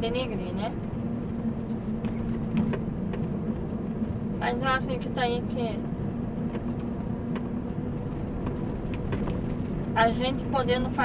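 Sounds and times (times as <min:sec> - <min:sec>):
road and tyre rumble: 0:00.0 - 0:11.0
truck diesel engine running: 0:00.0 - 0:11.0.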